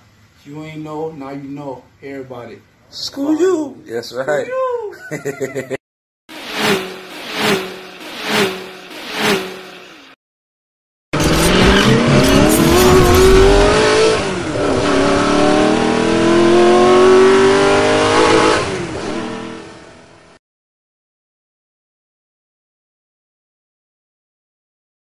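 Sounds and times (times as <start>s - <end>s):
car engine revving hard: 6.4s - 10.2s, 11.2s - 20.0s
rhythmic pulses: 11.2s - 14.3s.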